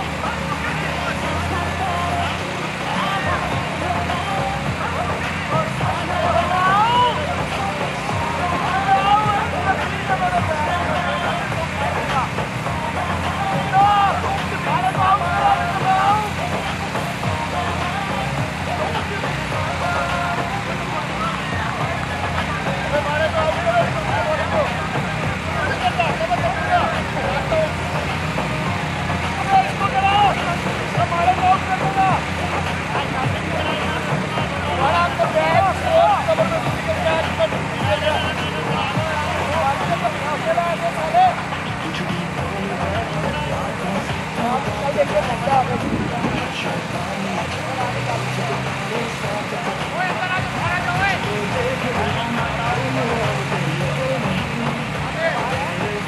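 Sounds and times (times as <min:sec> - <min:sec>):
people talking: 0:00.0 - 0:56.0
low rumble: 0:45.4 - 0:47.4.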